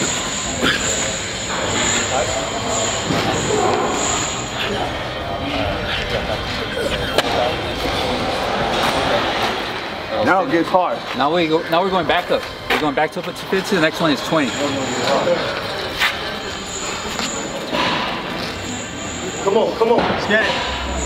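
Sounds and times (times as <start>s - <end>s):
indistinct voices: 0.0s - 21.0s
loud background noise: 0.0s - 21.0s
thin high whine: 0.0s - 21.0s.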